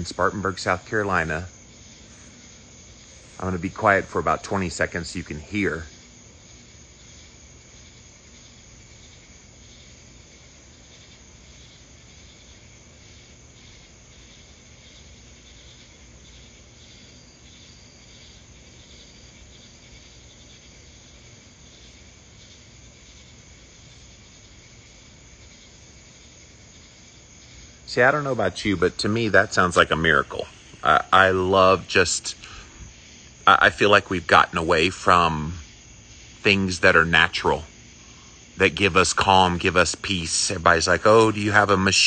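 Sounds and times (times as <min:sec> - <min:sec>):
crickets and night insects trilling: 0:00.0 - 0:42.0
faint low hum: 0:00.0 - 0:42.0.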